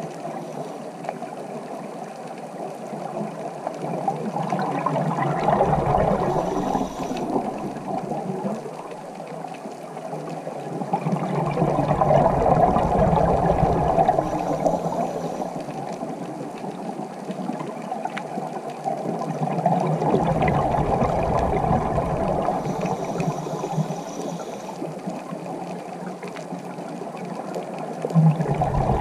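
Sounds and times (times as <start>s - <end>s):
exhaled bubbles rumbling: 2.7s - 29.0s
water rushing: 3.7s - 9.5s, 10.1s - 25.7s, 27.8s - 29.0s.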